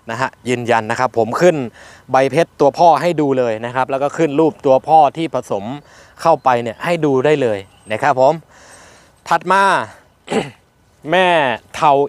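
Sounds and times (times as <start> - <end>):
man speaking: 0.0 - 8.6, 9.2 - 12.0
man clearing his throat: 10.2 - 10.6.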